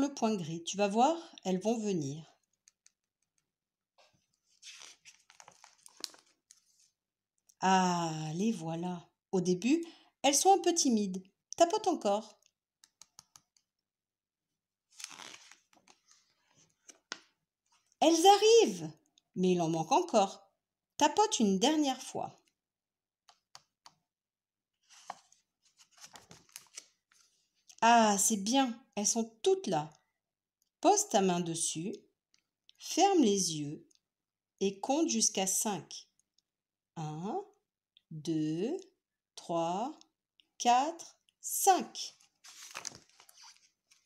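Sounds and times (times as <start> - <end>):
page turning rustle: 4.0 - 7.0, 14.9 - 17.3, 24.8 - 27.4, 42.1 - 44.0.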